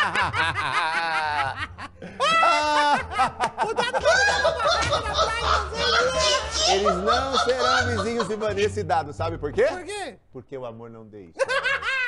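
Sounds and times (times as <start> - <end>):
laughter: 0.0 - 8.7, 11.4 - 12.0
excited high-pitched voices talking: 4.0 - 8.4.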